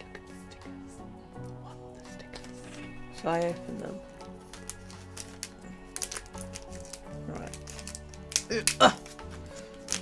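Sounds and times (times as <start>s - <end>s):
background music: 0.0s - 10.0s
plastic bag crinkling: 4.4s - 10.0s.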